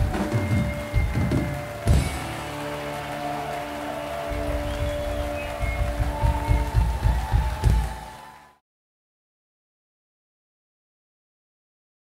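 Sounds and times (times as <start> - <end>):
rock band sustained chord: 0.0 - 8.2
crowd clapping and cheering: 0.0 - 8.6.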